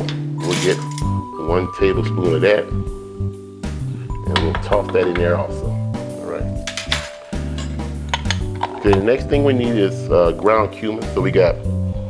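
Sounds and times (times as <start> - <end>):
background music with bass notes: 0.0 - 12.0
glass jar lid clinking: 0.4 - 1.2.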